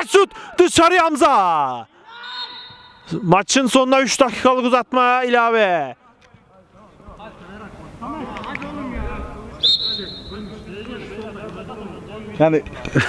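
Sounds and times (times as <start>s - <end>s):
short high whistle blast: 9.6s - 10.5s.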